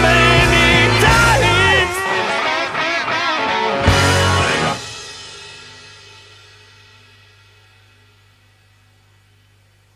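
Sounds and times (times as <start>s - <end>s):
sustained amplified guitar tones: 0.0s - 9.9s.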